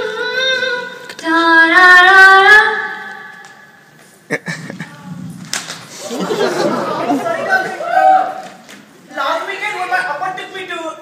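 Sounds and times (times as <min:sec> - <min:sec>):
audience chatter: 0:04.4 - 0:10.4.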